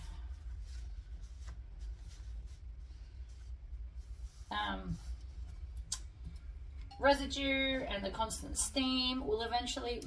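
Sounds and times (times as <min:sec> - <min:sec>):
hands smoothing fabric: 0:00.0 - 0:05.6
low steady hum: 0:00.0 - 0:10.0.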